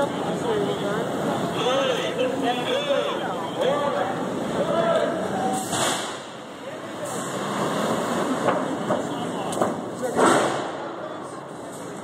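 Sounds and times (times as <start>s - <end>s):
street noise: 0.0s - 12.0s
voices: 0.0s - 12.0s.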